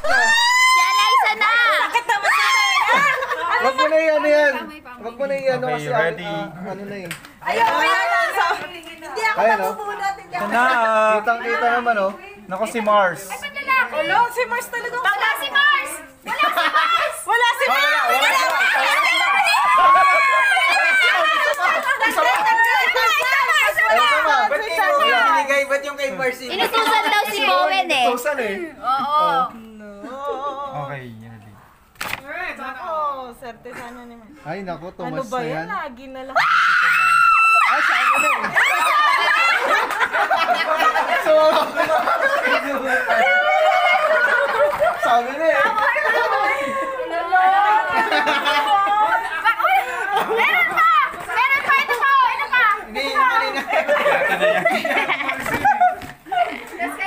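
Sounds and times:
people laughing: 0.0 - 4.4, 15.3 - 25.4, 36.8 - 57.0
people talking over one another: 0.0 - 29.6, 37.6 - 57.0
women chattering excitedly: 0.1 - 5.2, 7.4 - 30.7, 35.6 - 57.0.

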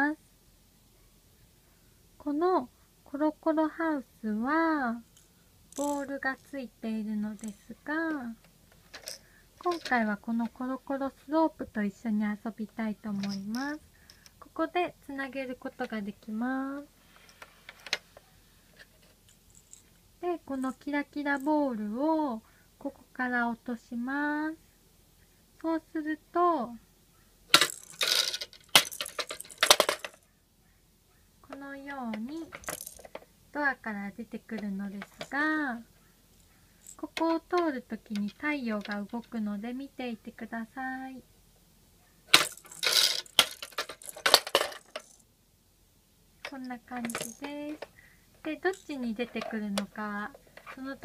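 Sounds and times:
plastic ball rattling down a slope: 5.2 - 6.2, 27.5 - 30.2, 42.3 - 45.2, 46.9 - 47.9.

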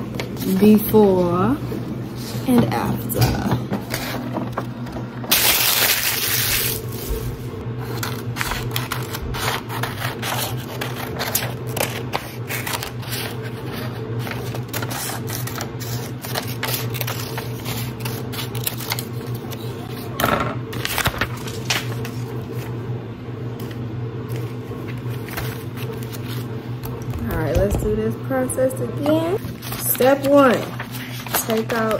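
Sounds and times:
steady low hum: 0.0 - 31.9
paper rustling and crackling: 5.3 - 20.1, 20.7 - 22.8, 23.6 - 26.5, 29.4 - 31.9.

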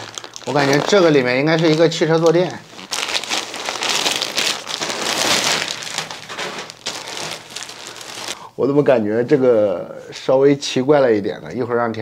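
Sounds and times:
plastic packaging crinkling: 0.0 - 8.4.

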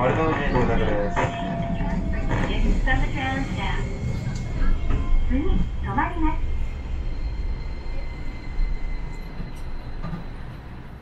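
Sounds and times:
streetcar wheels rumbling: 0.0 - 11.0.

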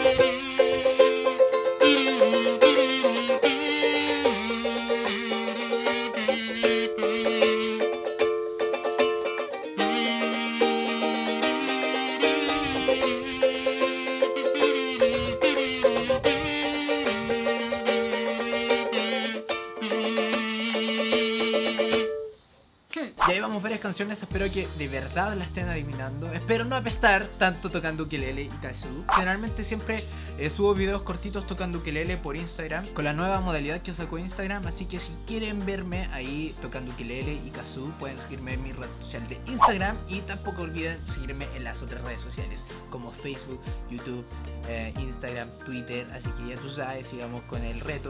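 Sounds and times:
kazoo buzzing a melody: 0.0 - 8.6, 9.8 - 22.4
strummed ukulele: 0.0 - 22.3.

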